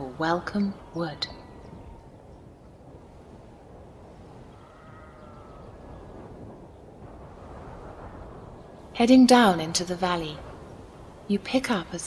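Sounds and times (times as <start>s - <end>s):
faint background ambience: 0.0s - 12.0s.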